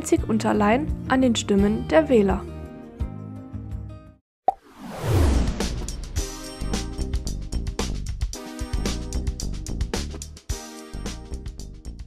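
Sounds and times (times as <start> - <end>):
background music: 0.0 - 4.2, 5.6 - 12.0
whoosh falling into low rumble: 4.6 - 7.2
jingle music: 6.2 - 7.8, 8.4 - 9.4.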